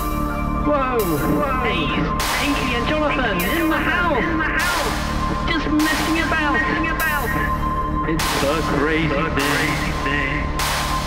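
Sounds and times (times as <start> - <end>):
electronic music with looping beat: 0.0 - 11.0.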